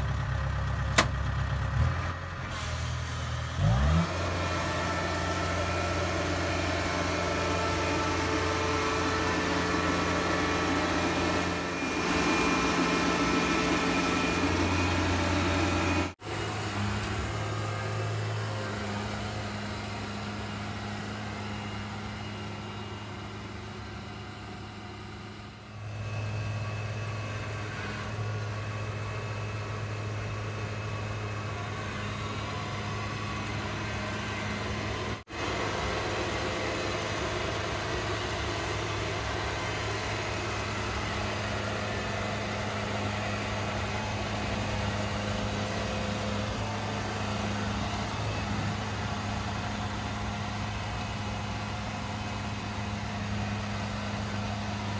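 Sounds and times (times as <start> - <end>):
combine harvester diesel engine: 0.0 - 54.9.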